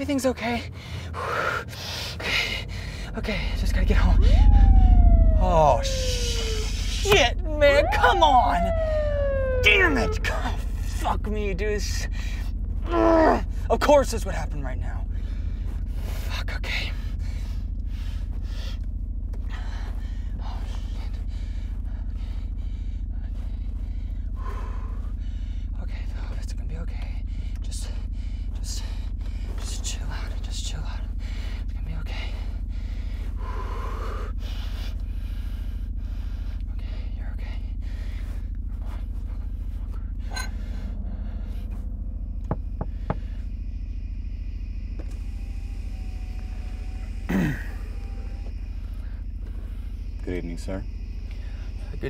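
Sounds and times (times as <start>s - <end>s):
car engine running: 0.0s - 52.0s
brief sound falling in pitch: 4.2s - 10.3s.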